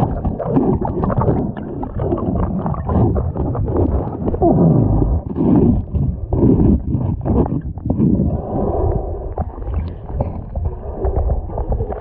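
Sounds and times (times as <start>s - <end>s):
gurgling water: 0.0s - 12.0s
underwater hull scraping: 0.0s - 12.0s.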